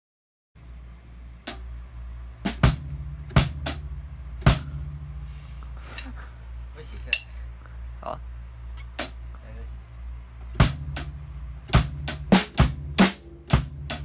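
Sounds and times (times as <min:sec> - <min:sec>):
low steady hum: 0:00.6 - 0:14.0
drum kit hits: 0:01.4 - 0:01.7, 0:02.4 - 0:04.8, 0:08.9 - 0:09.2, 0:10.5 - 0:14.0.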